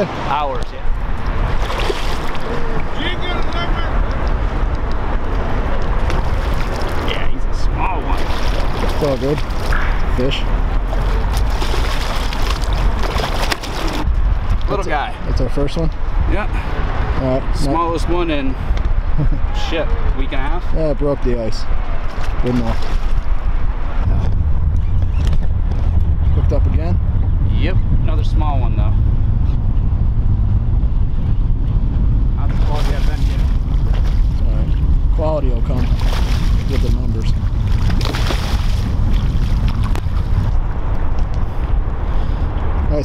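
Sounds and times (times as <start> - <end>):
steady low rumble: 0.0 - 43.0
wind buffeting microphone: 0.0 - 43.0
fish splashing at water surface: 1.4 - 2.9, 5.9 - 7.1, 8.0 - 10.1, 10.8 - 14.0, 35.8 - 36.9, 37.6 - 40.4.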